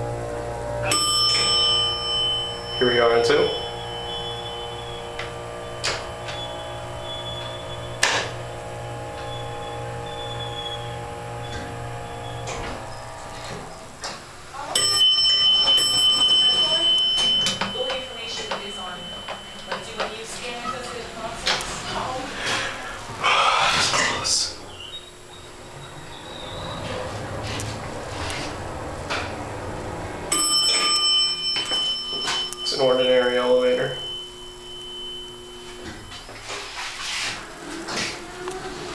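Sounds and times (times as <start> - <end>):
electronic buzzer tone: 0.0 - 14.0, 30.3 - 36.8
low hum: 0.0 - 36.6
muffled voices: 17.6 - 24.7.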